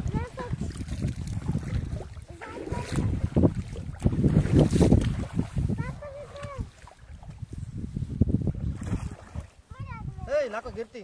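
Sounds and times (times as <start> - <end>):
water splashing in river: 0.0 - 7.5, 8.5 - 9.8
wind buffeting microphone: 0.0 - 11.0.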